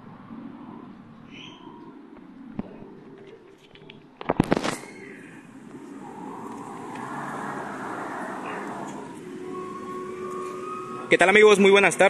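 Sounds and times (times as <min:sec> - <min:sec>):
faint steady hum: 0:00.0 - 0:12.0
road vehicle passing: 0:00.0 - 0:12.0.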